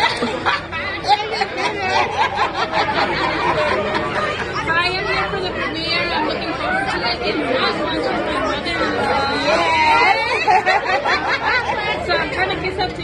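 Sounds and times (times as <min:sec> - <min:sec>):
women chatting: 0:00.0 - 0:02.9, 0:04.5 - 0:13.0
women laughing: 0:00.0 - 0:05.0, 0:09.4 - 0:12.6.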